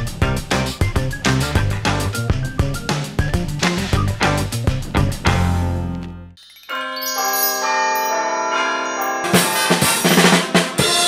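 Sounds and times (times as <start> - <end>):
bell-like chime music: 6.4 - 11.0.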